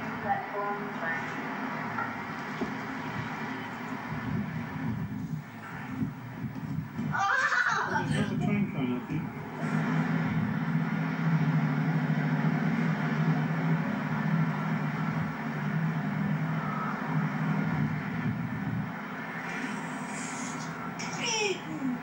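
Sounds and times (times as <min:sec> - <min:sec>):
diesel train engine drone: 0:00.0 - 0:22.0
rail noise: 0:00.0 - 0:22.0.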